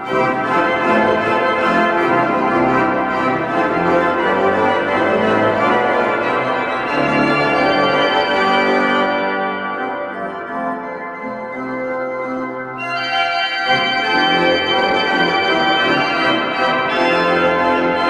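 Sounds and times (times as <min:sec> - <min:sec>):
pipe organ playing chords: 0:00.0 - 0:18.0.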